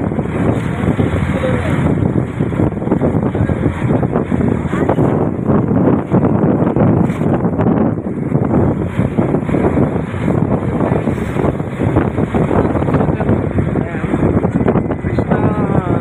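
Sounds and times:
road noise: 0.0s - 16.0s
wind buffeting microphone: 0.0s - 16.0s.

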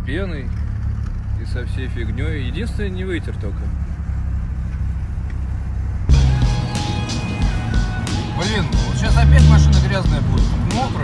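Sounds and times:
car engine idling: 0.0s - 11.0s
background music: 6.1s - 11.0s.

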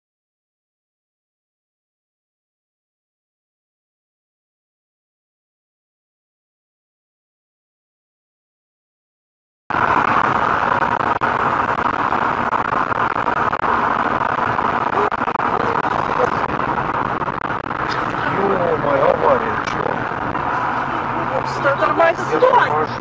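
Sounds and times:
car road and engine noise: 9.7s - 23.0s
muffled voices talking: 13.6s - 23.0s.

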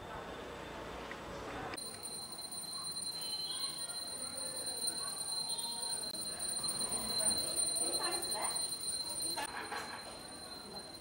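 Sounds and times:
faint voices: 1.2s - 11.0s
small hand bell ringing: 1.8s - 11.0s.

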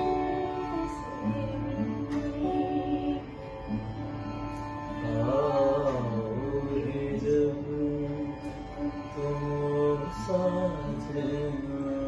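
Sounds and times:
acoustic guitar: 0.0s - 12.0s
woman singing slow song: 0.0s - 12.0s.

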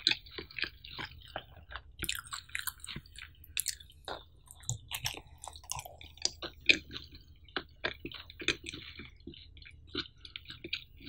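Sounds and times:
chewing with wet mouth sounds: 0.0s - 11.0s.

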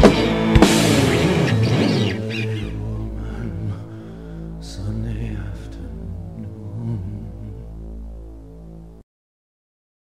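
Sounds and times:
electric guitars and bass chord: 0.0s - 9.0s.

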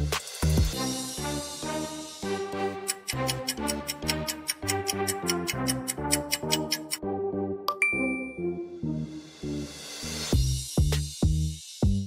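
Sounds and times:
background music: 0.0s - 12.0s
bright ding: 7.7s - 8.5s.

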